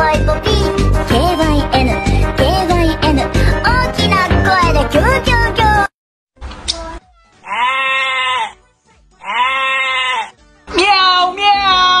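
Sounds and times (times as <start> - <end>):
animal bleats: 7.3 - 8.6, 9.2 - 10.4.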